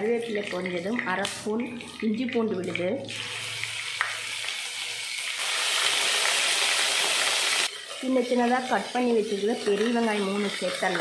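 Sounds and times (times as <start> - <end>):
spices sizzling in hot oil: 2.8 - 11.0.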